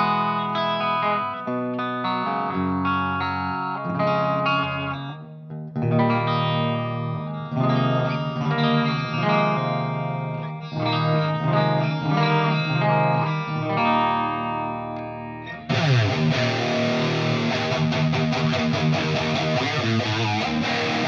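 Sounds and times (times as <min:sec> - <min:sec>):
bright strummed guitar: 0:00.0 - 0:21.0
electric guitar chords ringing: 0:00.0 - 0:21.0.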